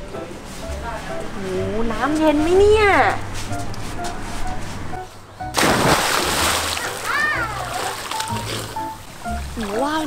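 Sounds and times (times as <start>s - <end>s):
loud splash into pool: 5.6s - 8.7s.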